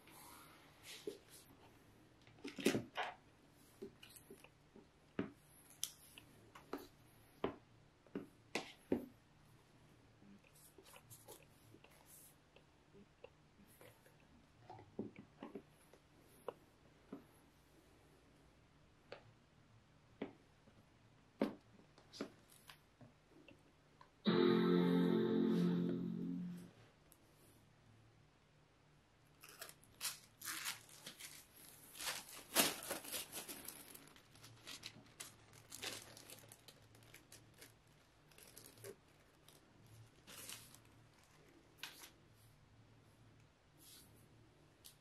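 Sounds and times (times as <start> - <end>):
faint rustles and brushes: 10.4 - 12.4, 43.7 - 44.4
packaging rustling and crinkling: 29.4 - 42.2.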